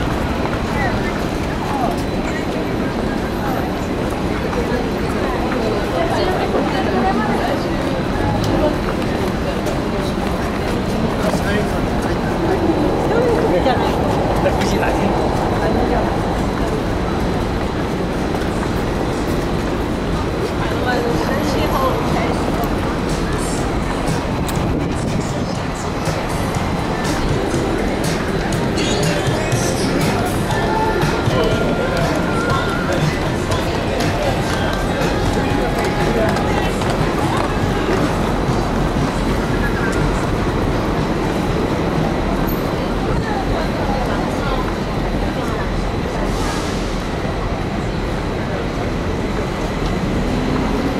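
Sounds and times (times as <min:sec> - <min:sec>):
city street noise: 0:00.0 - 0:50.9
low traffic rumble: 0:00.0 - 0:50.9
voices of passers-by: 0:00.0 - 0:50.9.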